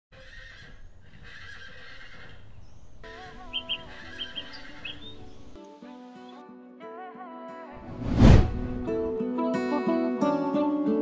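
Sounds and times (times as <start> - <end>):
horse neighing: 0.2 - 2.6.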